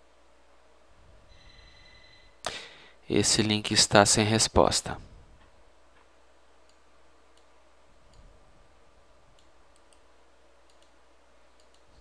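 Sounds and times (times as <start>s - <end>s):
low steady hum: 0.0s - 12.0s
computer mouse clicks: 6.0s - 7.5s, 9.3s - 12.0s.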